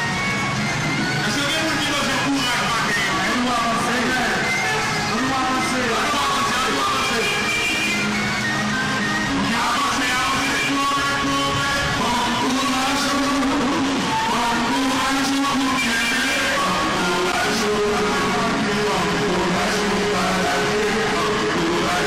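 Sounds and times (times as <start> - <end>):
melodic background music: 0.0 - 22.0.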